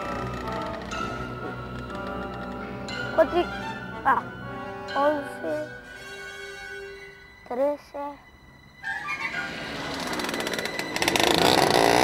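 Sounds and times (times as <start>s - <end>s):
go-kart engine buzzing: 8.8s - 12.0s.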